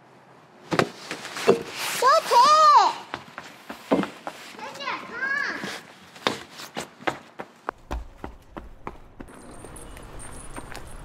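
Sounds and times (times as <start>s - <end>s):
children calling out: 2.0s - 3.1s.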